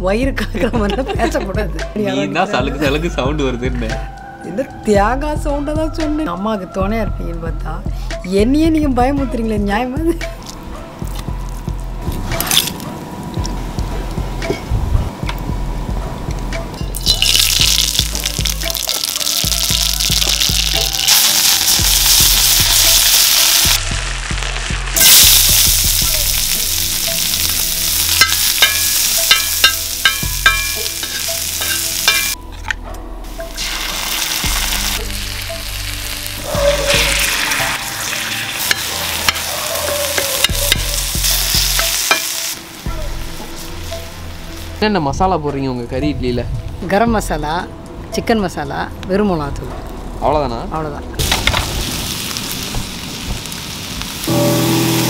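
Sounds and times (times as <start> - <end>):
food sizzling on iron griddle: 17.0 - 32.4, 33.3 - 44.8, 51.2 - 55.0.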